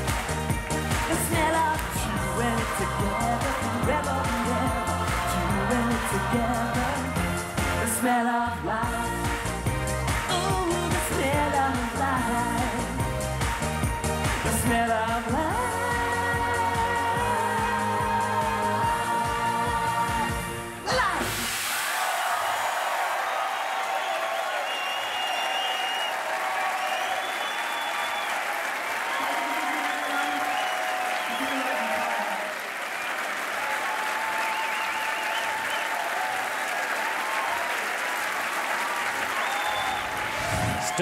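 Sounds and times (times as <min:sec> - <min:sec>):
audience applauding: 0:00.0 - 0:07.8, 0:21.7 - 0:41.0
people cheering and whooping: 0:21.7 - 0:41.0.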